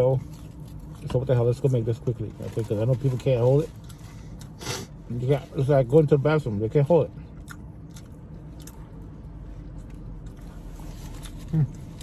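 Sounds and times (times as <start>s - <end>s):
steady low hum: 0.0s - 12.0s
chewing and biting food: 7.2s - 12.0s.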